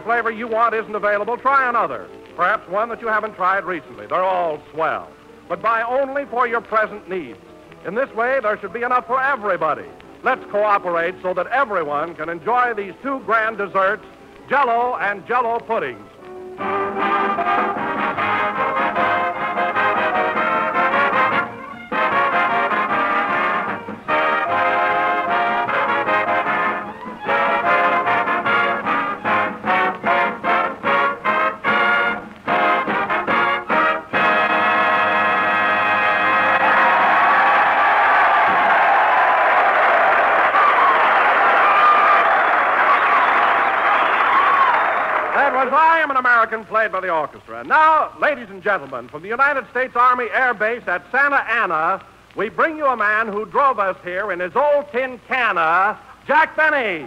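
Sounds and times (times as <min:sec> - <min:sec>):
big band brass playing: 0:16.3 - 0:43.9.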